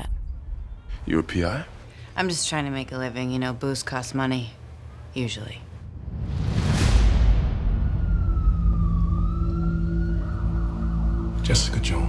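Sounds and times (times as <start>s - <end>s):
whoosh: 5.8s - 9.4s
deep bass hit: 5.8s - 9.5s
low music drone: 6.9s - 12.0s.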